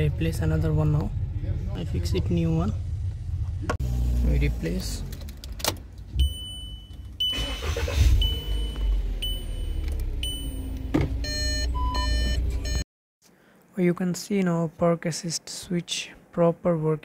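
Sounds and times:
car engine rumbling low: 0.0s - 12.8s
high electronic beep: 6.2s - 12.8s
park assist buzzer beeps: 6.2s - 12.8s.

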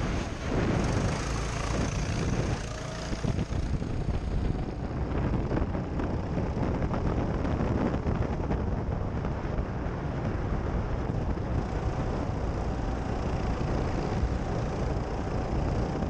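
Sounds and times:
go-kart engine at speed: 0.0s - 16.0s
wind buffeting microphone: 0.0s - 16.0s.

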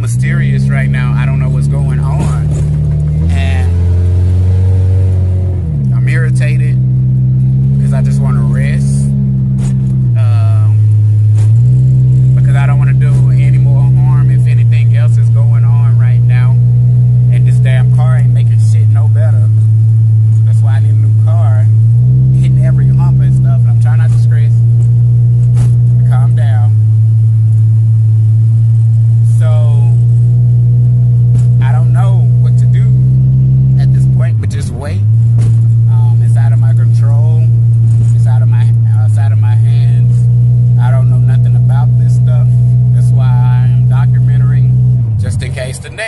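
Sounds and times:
loud low hum: 0.0s - 46.0s.

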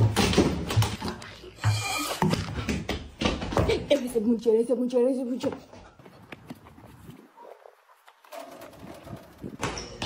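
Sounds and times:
basketball bouncing: 0.0s - 1.1s.

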